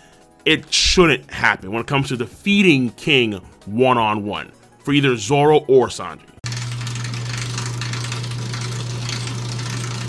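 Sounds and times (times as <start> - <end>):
film reel motor humming and rattling: 6.4 - 10.0.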